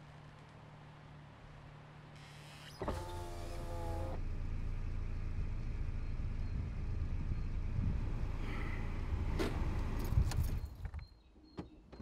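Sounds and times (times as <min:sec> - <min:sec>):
car engine rumbling: 0:00.0 - 0:10.8.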